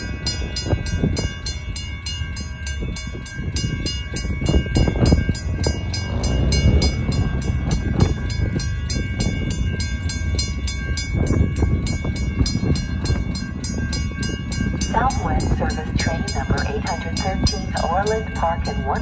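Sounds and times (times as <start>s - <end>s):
railroad crossing bell dinging: 0.0s - 19.0s
wind buffeting microphone: 0.0s - 19.0s.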